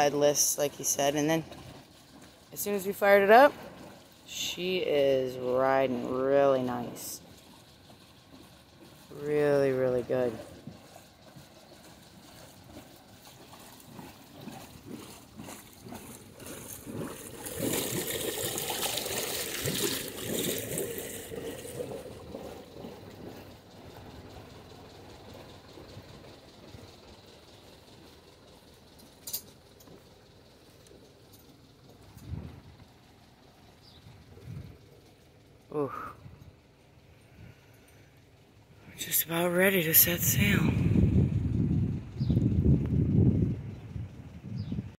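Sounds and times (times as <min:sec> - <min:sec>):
marine diesel engine idling: 0:00.0 - 0:45.0
water splashing from exhaust: 0:00.0 - 0:45.0.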